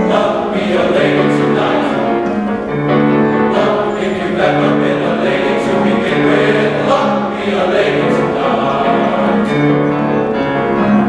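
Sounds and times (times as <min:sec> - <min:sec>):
men's choir singing: 0:00.0 - 0:11.0
piano accompaniment: 0:00.0 - 0:11.0.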